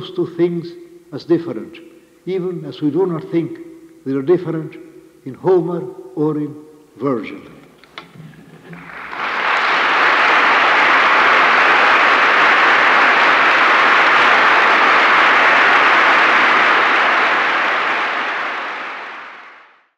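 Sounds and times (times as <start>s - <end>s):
audience applauding: 8.4s - 19.8s.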